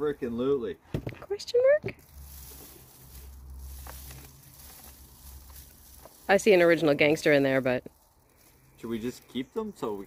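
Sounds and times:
soil patter into plastic tub: 1.8 - 9.4.

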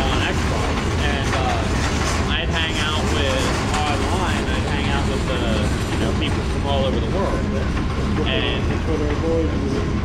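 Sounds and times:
freight train wheels rumbling: 0.0 - 10.0.

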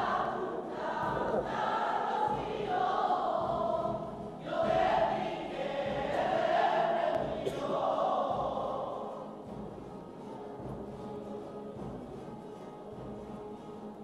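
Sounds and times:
choir singing long notes: 0.0 - 9.6.

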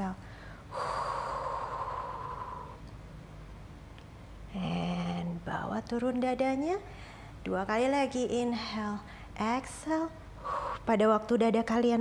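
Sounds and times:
woman's breathy exhale: 0.2 - 2.8.

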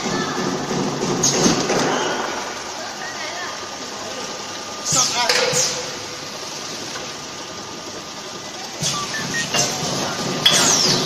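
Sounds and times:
packing machine humming: 0.0 - 11.0.

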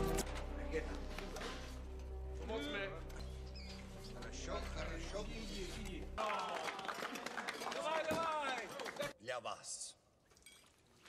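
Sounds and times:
people clapping and cheering: 6.2 - 9.2.

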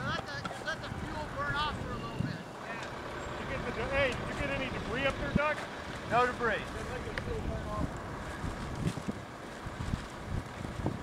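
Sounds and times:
people talking indistinctly: 0.0 - 8.6
outdoor air rushing: 0.0 - 11.0.

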